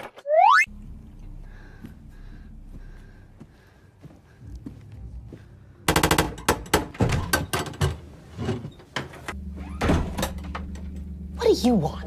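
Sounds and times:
footsteps going up stairs: 1.8s - 5.5s.

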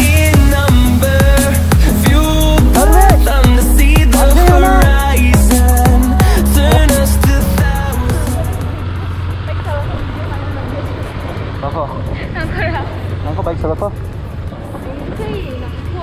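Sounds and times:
motorcycle engine: 0.3s - 16.0s
voices: 1.4s - 14.1s, 14.7s - 16.0s
wind noise: 9.8s - 16.0s.

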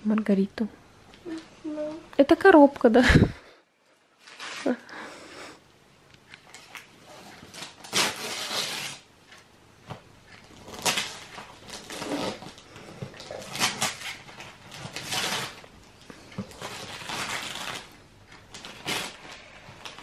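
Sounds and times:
wrapping paper rustling and tearing: 4.2s - 4.8s, 6.5s - 9.1s, 10.5s - 15.7s, 16.4s - 20.0s.

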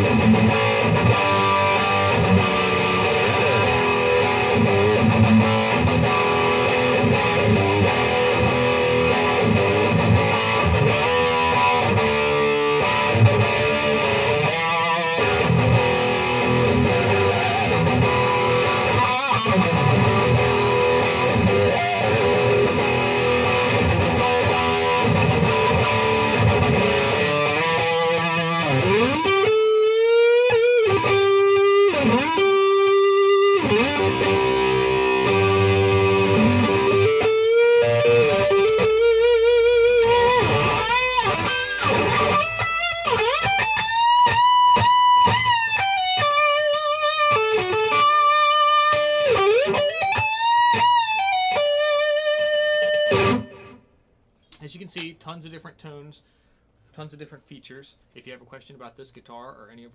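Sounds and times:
distorted electric guitar: 0.0s - 53.9s.

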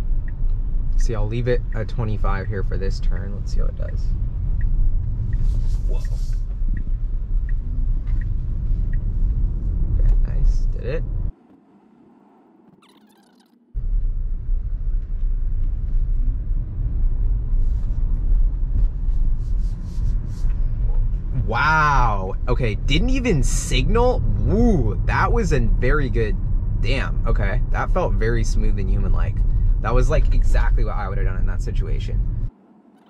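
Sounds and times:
road and tyre rumble in car: 0.0s - 12.8s, 13.6s - 33.0s.

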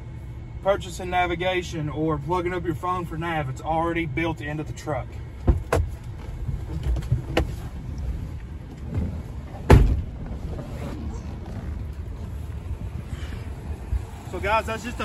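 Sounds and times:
low rumble: 0.0s - 15.0s
truck door shutting: 8.8s - 11.8s.

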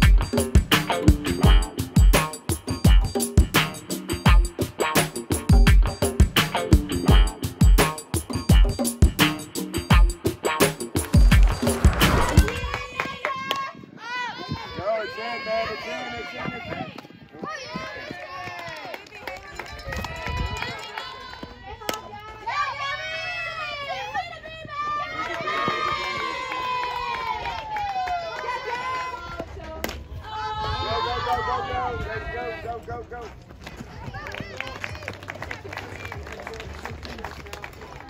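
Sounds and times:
girls calling and cheering: 12.1s - 32.1s, 33.8s - 36.2s.

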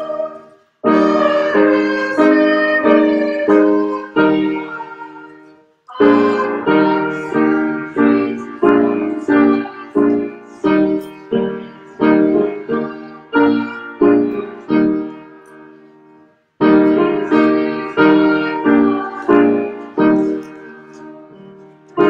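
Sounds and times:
piano playing hymn chords: 0.0s - 22.0s.

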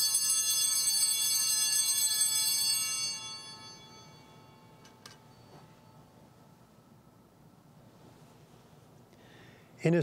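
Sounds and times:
altar bells ringing: 0.0s - 6.6s.

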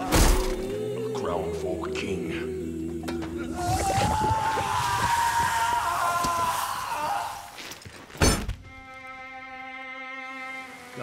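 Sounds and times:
soft string music: 0.0s - 3.6s, 8.5s - 11.0s
man screaming: 3.6s - 7.6s.

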